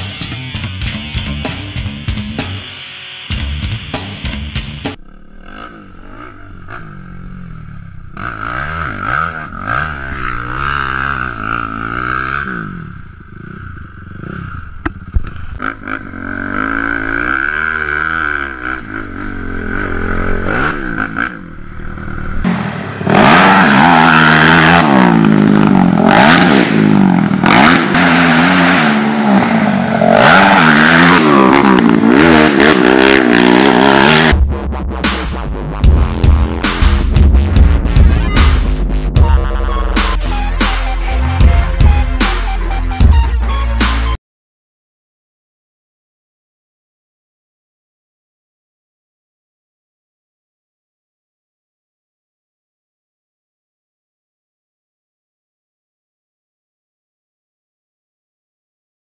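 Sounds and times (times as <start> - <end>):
quad engine revving: 3.3 - 44.2
rush of riding noise: 3.4 - 41.4.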